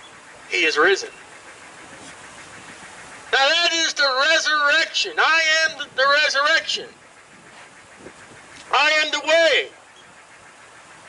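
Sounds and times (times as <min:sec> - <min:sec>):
street background hum: 0:00.0 - 0:11.0.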